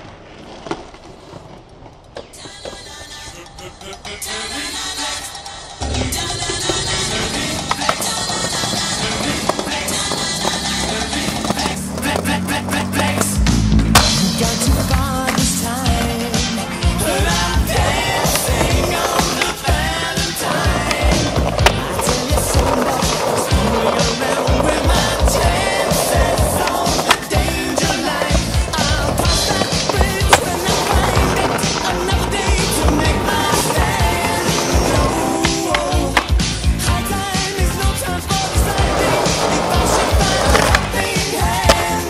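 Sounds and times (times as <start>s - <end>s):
skateboard clacking and scraping on stone: 0.0s - 3.5s, 5.9s - 42.0s
skateboard wheels rolling on pavement: 0.0s - 42.0s
music with a steady beat: 13.4s - 42.0s.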